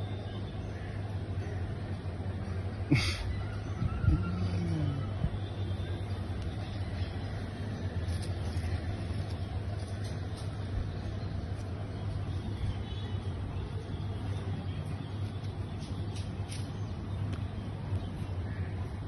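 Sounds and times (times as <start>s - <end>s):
low rumbling hum: 0.0s - 19.0s.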